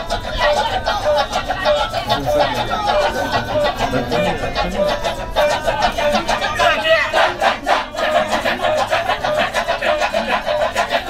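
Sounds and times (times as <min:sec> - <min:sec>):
held sung line: 0:00.0 - 0:11.0
men chanting rhythmically: 0:00.0 - 0:11.0.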